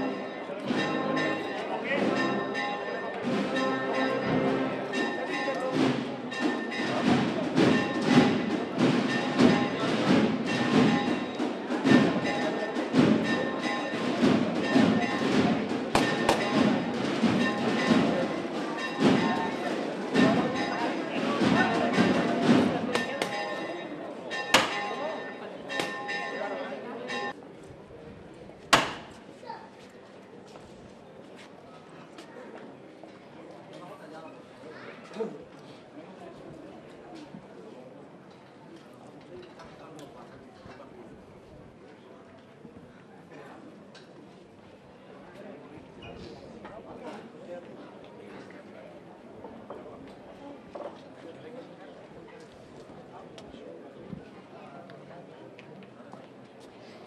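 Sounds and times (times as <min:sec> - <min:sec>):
church bells pealing: 0:00.0 - 0:27.4
crowd voices: 0:00.0 - 0:57.0
sharp knocks: 0:05.8 - 0:19.6, 0:21.3 - 0:23.7, 0:24.4 - 0:25.0, 0:25.7 - 0:26.2, 0:28.7 - 0:29.2.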